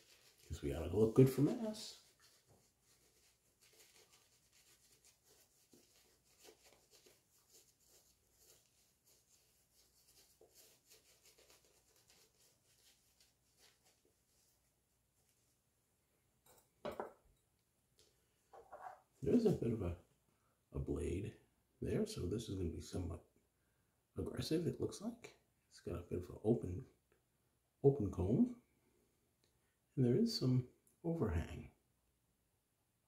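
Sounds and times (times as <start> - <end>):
shaving brush rubbing lather: 0.0 - 15.5, 19.2 - 19.7.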